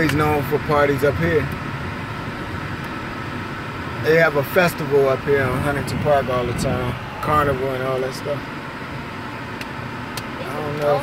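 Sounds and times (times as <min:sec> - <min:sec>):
car cabin noise: 0:00.0 - 0:11.0
car engine humming: 0:00.0 - 0:11.0.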